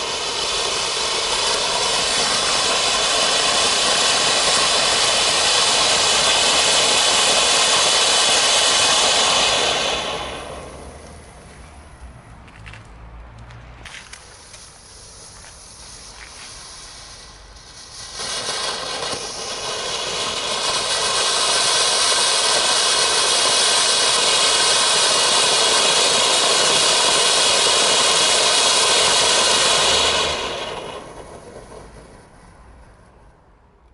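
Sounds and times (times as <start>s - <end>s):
firework fountain hissing sparks: 0.0s - 11.9s, 13.9s - 33.2s.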